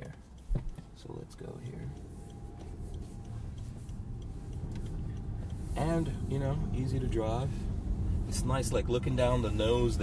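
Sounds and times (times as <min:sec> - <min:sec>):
low car cabin hum: 0:00.0 - 0:10.0
turn signal ticking: 0:00.0 - 0:10.0.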